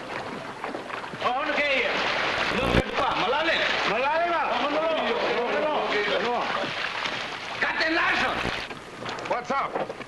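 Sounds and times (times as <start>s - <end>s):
water splashing: 0.0s - 9.4s.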